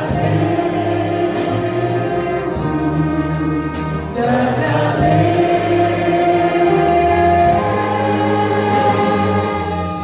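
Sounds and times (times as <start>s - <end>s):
choir singing: 0.0s - 10.0s
violins and keyboard playing: 0.0s - 10.0s.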